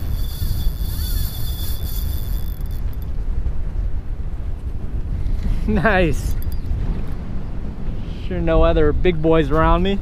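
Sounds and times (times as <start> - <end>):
fishing reel drag whine: 0.0 - 3.1
wind buffeting microphone: 0.0 - 10.0.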